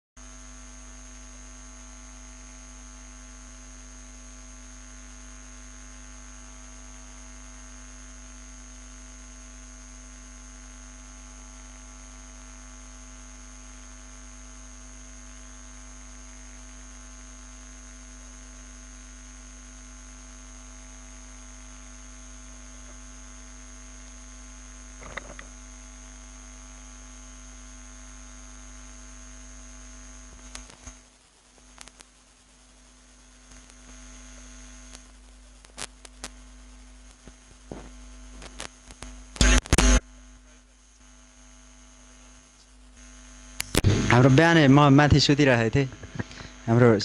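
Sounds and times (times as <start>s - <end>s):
electrical mains hum: 0.2s - 47.0s
thin high whine: 0.2s - 47.0s
steady hiss: 29.1s - 47.0s
even hiss: 43.6s - 47.0s.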